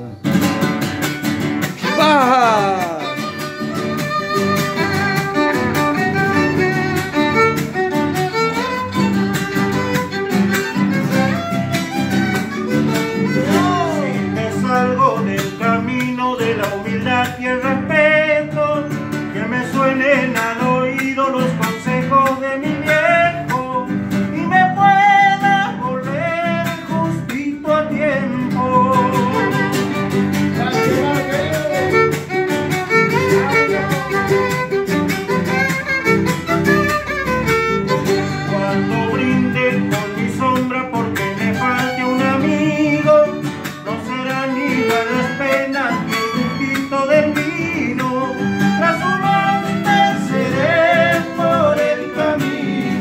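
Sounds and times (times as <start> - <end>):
strummed acoustic guitars: 0.0 - 53.0
man singing: 1.7 - 3.5, 12.9 - 35.9, 38.0 - 53.0
bowed violin: 2.7 - 14.4, 29.2 - 39.8, 41.2 - 53.0.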